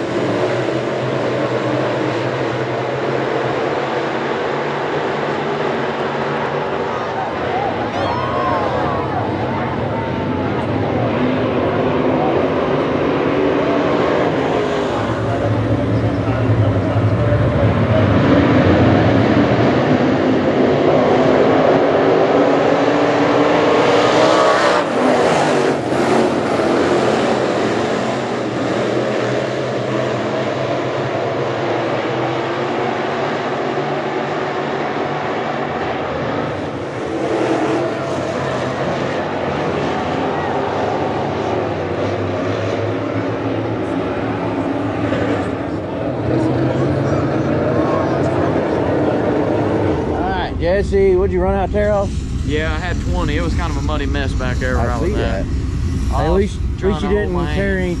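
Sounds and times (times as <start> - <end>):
race car engines roaring: 0.0 - 58.0.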